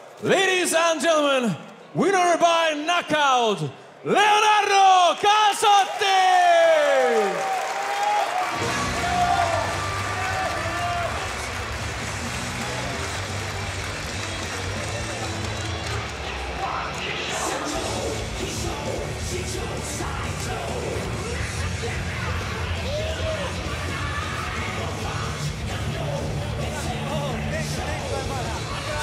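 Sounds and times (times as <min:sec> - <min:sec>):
crowd cheering: 0:00.0 - 0:29.0.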